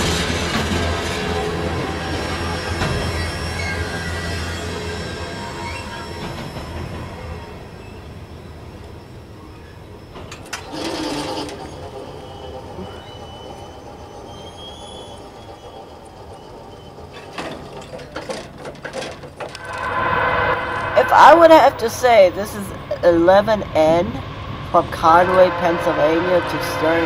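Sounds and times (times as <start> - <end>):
train wheels on rails: 0.0 - 27.0
crossing warning bell ringing: 19.6 - 27.0.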